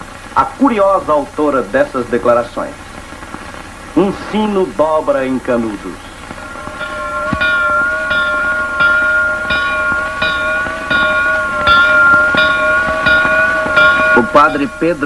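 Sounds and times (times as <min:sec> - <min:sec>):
small church bell tolling: 0:06.4 - 0:15.0.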